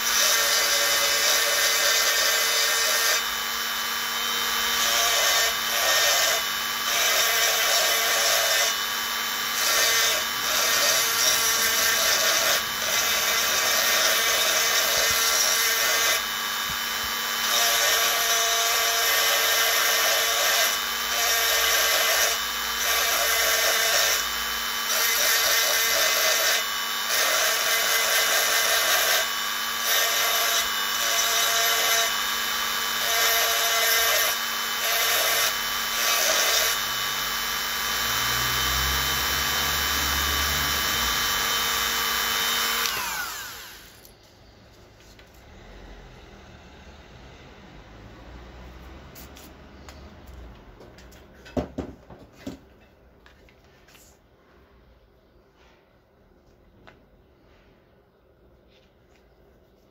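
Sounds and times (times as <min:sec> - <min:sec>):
rotary tool motor whine: 0:00.0 - 0:44.3.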